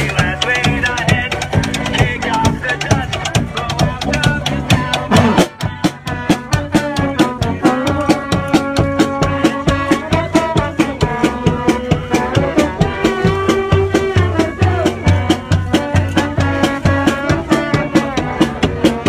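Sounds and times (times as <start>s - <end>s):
accordion: 0.0s - 19.0s
bass drums beating: 0.0s - 19.0s
street band playing: 0.0s - 19.0s.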